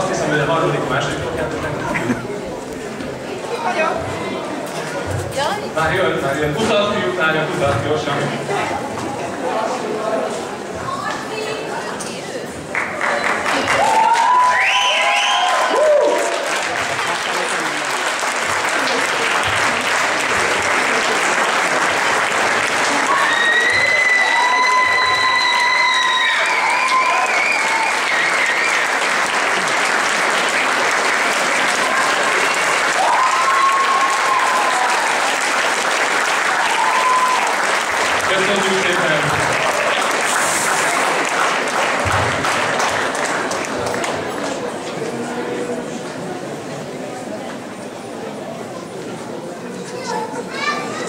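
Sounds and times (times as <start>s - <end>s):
audience applause: 12.6s - 45.6s
long held cheers: 13.6s - 16.7s, 22.7s - 29.7s, 31.7s - 38.2s.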